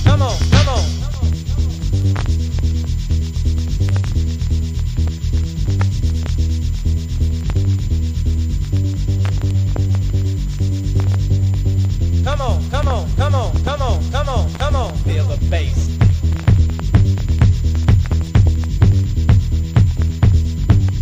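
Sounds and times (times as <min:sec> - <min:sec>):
fast scratchy percussion: 0:00.0 - 0:21.0
heavy looping bass line: 0:00.0 - 0:21.0
pitch-bending vocal sample: 0:12.2 - 0:15.9.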